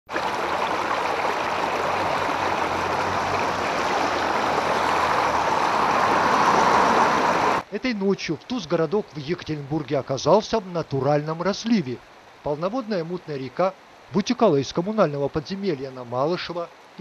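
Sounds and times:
water rushing over road: 0.1 - 17.0.

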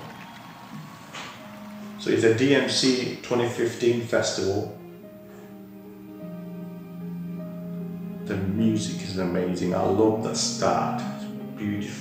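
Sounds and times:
hall ambience hiss: 0.7 - 12.0
soft held musical notes: 1.4 - 12.0.

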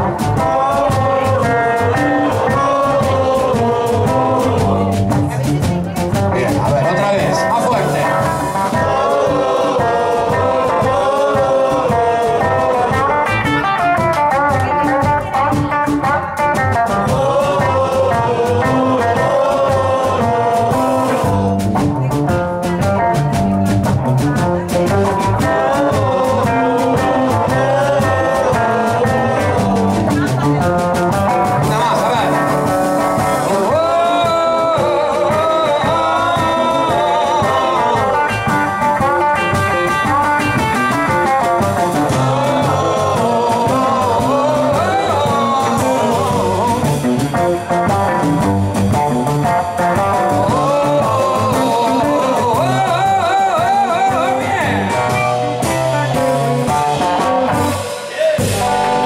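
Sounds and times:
man singing: 0.0 - 23.2, 24.3 - 48.3, 49.3 - 59.0
drums with cymbals: 0.0 - 59.0
electric guitar: 0.0 - 59.0
plucked double bass: 0.0 - 59.0.

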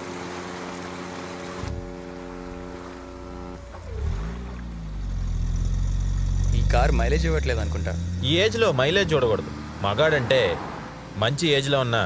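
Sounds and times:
held musical chord: 1.6 - 5.5.

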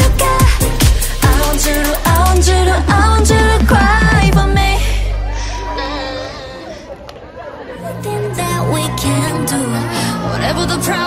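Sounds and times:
pop song from speaker: 0.0 - 6.7, 7.8 - 11.0
crowd chattering: 1.5 - 11.0.

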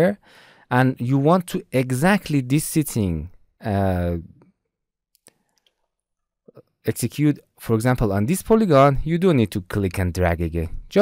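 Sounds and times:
man speaking: 0.0 - 4.4, 6.9 - 11.0.

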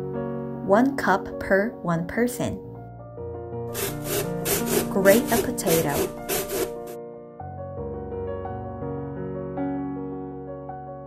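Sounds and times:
background music: 0.0 - 11.0
potato rasping on grater: 3.8 - 7.0.

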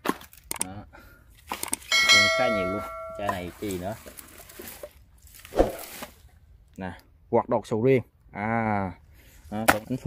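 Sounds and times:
person speaking: 2.1 - 4.0.

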